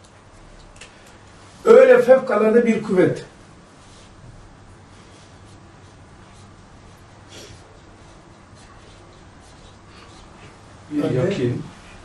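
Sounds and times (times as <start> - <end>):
low room hum: 0.0 - 12.0
marker writing on whiteboard: 3.9 - 12.0.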